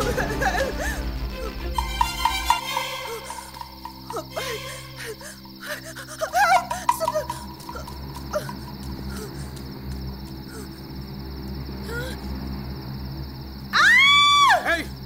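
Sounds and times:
low drone: 0:00.0 - 0:15.0
faint cries: 0:13.8 - 0:15.0.

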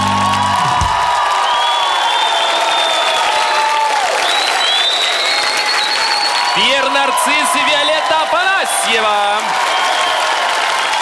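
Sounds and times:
musical accompaniment: 0:00.0 - 0:01.0
audience applause and cheering: 0:00.0 - 0:11.0.

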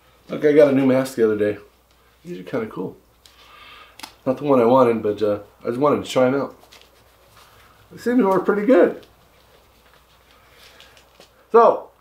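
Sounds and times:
face mask straps rustling: 0:06.4 - 0:11.5.

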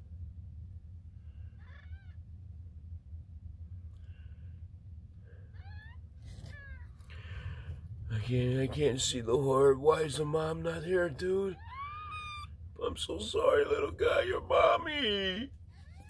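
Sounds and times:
low steady hum: 0:00.0 - 0:16.0
kittens mewing: 0:01.4 - 0:02.2, 0:05.4 - 0:07.3, 0:11.4 - 0:12.6, 0:13.6 - 0:16.0.

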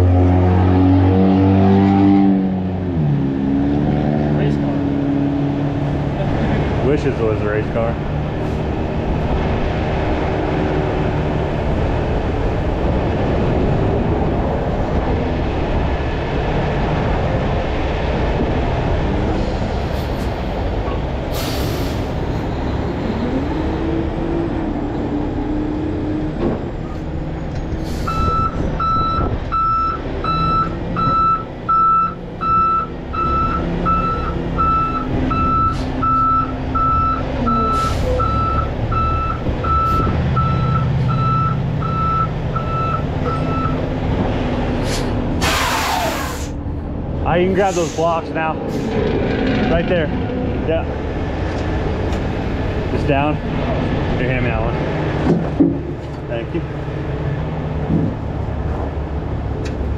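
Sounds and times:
diesel engine running: 0:00.0 - 0:59.9
backup alarm beeping: 0:28.1 - 0:43.8
short air hiss: 0:44.8 - 0:46.6.

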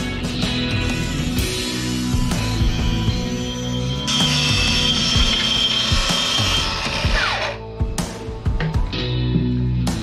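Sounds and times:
rock music: 0:00.0 - 0:10.0
plunge saw cutting wood: 0:02.4 - 0:07.6.

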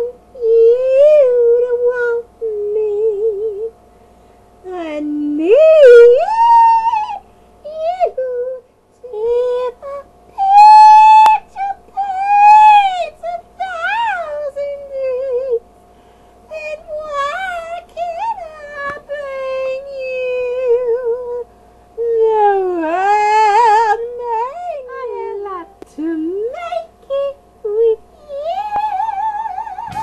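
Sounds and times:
woman crooning wordlessly: 0:00.0 - 0:03.7, 0:04.7 - 0:15.6, 0:16.5 - 0:21.4, 0:22.0 - 0:30.0
woman singing high note: 0:22.0 - 0:30.0.

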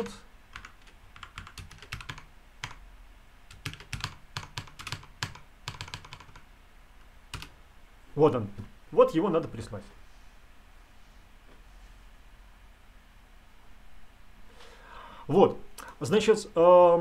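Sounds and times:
computer keyboard typing: 0:00.0 - 0:02.8, 0:03.5 - 0:06.5, 0:07.3 - 0:07.6.

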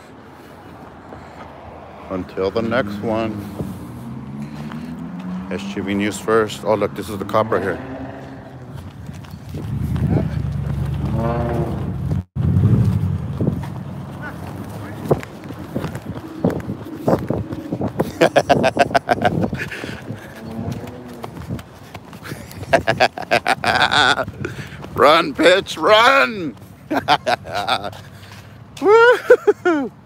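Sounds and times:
low traffic rumble: 0:00.0 - 0:30.0
man talking: 0:02.1 - 0:03.6, 0:05.4 - 0:07.9, 0:23.8 - 0:26.6
running footsteps on concrete: 0:03.3 - 0:07.0, 0:07.8 - 0:29.9
laughter: 0:18.0 - 0:20.3, 0:22.2 - 0:24.6, 0:26.9 - 0:28.1, 0:28.8 - 0:29.9.

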